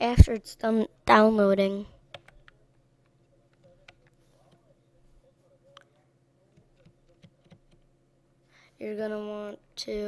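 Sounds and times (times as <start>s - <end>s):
low steady hum: 0.0s - 10.0s
computer keys tapping: 2.1s - 4.7s, 6.5s - 7.9s.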